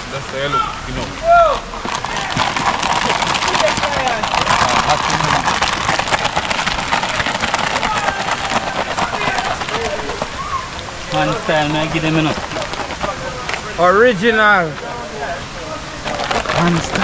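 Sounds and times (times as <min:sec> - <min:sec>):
distant voices talking: 0:00.0 - 0:17.0
river water rushing: 0:00.0 - 0:17.0.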